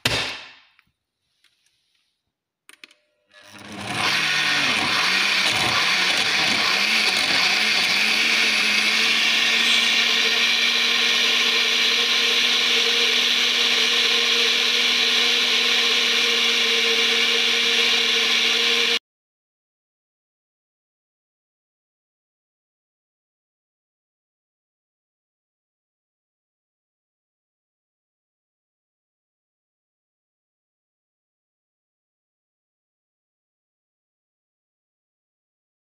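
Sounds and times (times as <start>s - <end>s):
blender whining: 3.0s - 19.0s.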